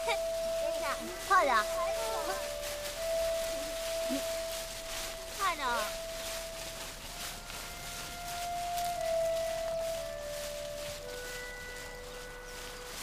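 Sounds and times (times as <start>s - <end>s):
soft slow background music: 0.0s - 13.0s.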